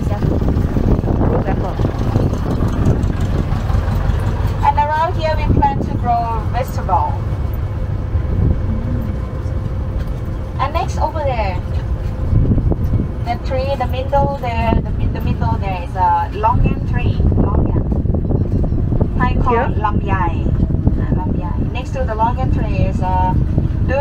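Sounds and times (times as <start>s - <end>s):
tram rumbling along road: 0.0s - 24.0s
voices talking: 19.2s - 24.0s.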